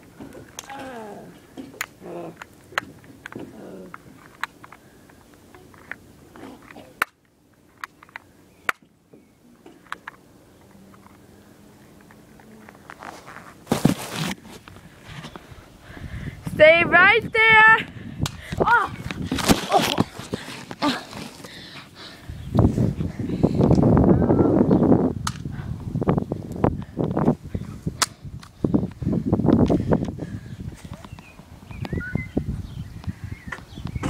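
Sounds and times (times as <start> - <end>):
leaves and twigs rustling: 18.6 - 21.8
sharp cracks: 28.0 - 28.6.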